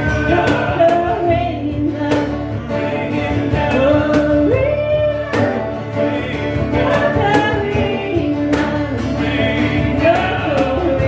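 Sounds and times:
live band playing guitars: 0.0s - 11.0s.

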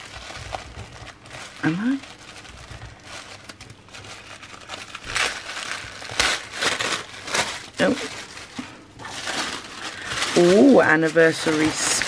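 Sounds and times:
tissue paper rustling and crinkling: 0.0s - 12.0s.

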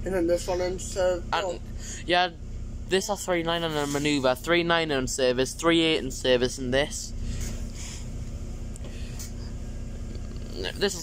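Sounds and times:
bus engine drone: 0.0s - 11.0s.

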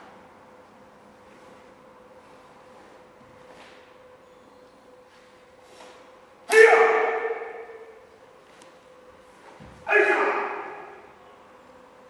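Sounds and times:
person shouting kiai: 6.5s - 8.0s, 9.8s - 11.1s.

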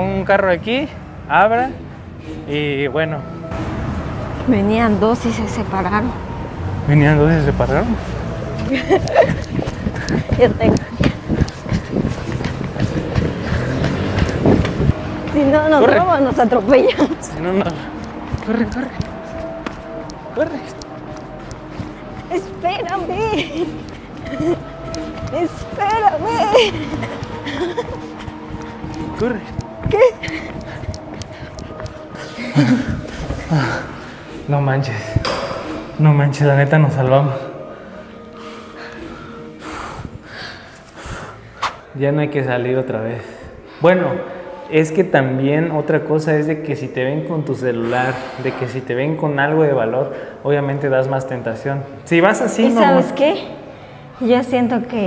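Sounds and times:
car passing by: 0.0s - 39.4s
faint music: 0.0s - 55.0s
people breathing heavily and gasping: 8.4s - 36.0s, 37.3s - 42.0s, 43.0s - 44.8s, 47.8s - 48.9s, 50.0s - 50.5s, 53.4s - 54.4s.

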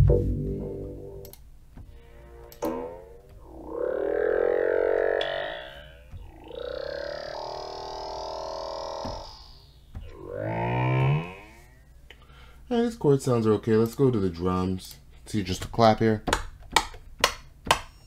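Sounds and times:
synthesizer chords: 0.0s - 12.0s.

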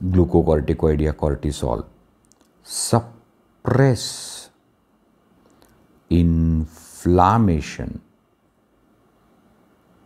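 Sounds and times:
man speaking: 0.0s - 2.0s, 2.6s - 4.6s, 6.1s - 8.1s.

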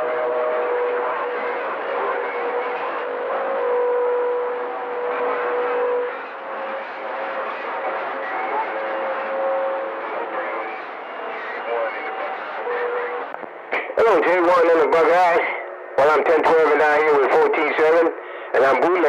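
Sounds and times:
faint garbled radio voices: 0.0s - 19.0s
radio static hiss: 0.0s - 19.0s.

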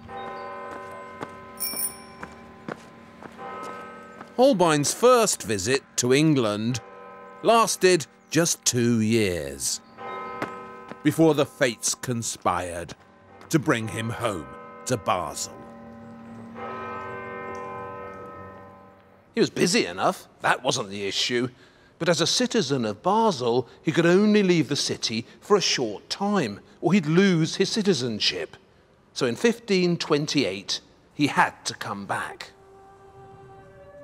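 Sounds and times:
footsteps on stone paving: 0.0s - 5.0s, 10.1s - 11.3s, 12.9s - 13.7s
bells ringing: 0.0s - 20.1s.

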